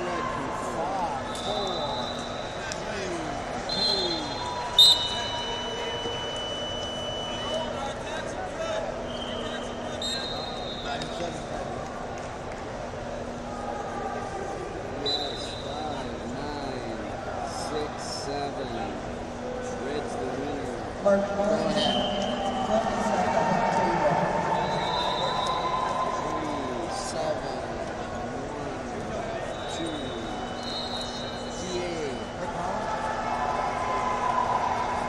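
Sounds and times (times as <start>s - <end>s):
crowd chatter in sports hall: 0.0s - 35.0s
high whistle tones: 1.3s - 2.7s, 3.7s - 7.8s, 9.1s - 11.2s, 15.0s - 16.0s, 21.7s - 22.8s, 24.4s - 26.8s, 29.5s - 31.7s.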